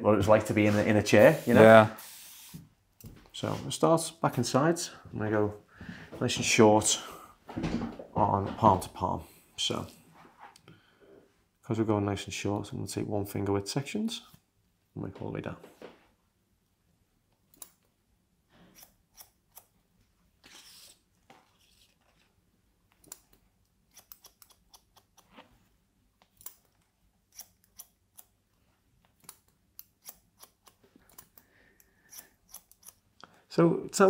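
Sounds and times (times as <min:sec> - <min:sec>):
scissors snipping hair: 0:18.7 - 0:19.7, 0:23.0 - 0:25.4, 0:26.2 - 0:28.3, 0:29.1 - 0:31.4, 0:32.1 - 0:33.0.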